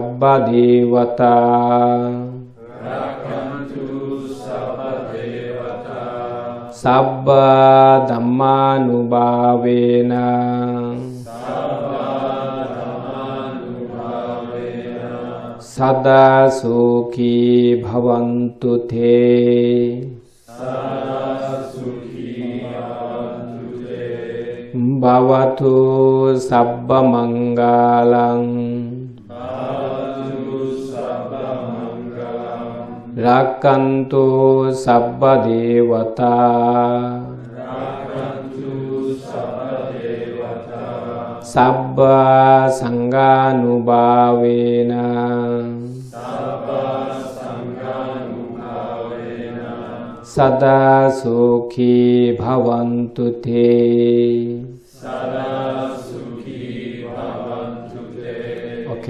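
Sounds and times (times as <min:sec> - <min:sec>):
group chanting in unison: 0:00.0 - 0:59.0.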